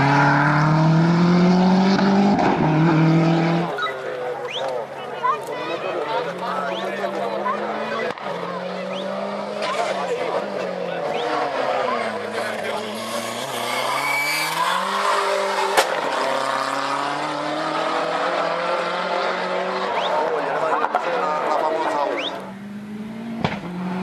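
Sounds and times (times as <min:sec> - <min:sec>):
car engine accelerating hard: 0:00.0 - 0:04.6, 0:06.1 - 0:24.0
tyre squeal: 0:03.7 - 0:04.7, 0:13.0 - 0:15.7.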